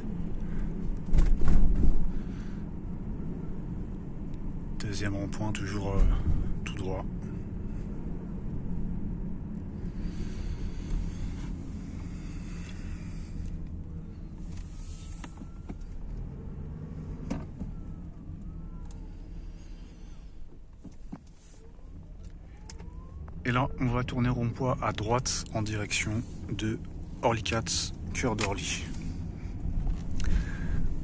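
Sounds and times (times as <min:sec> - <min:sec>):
car driving slowly: 0:00.0 - 0:31.0.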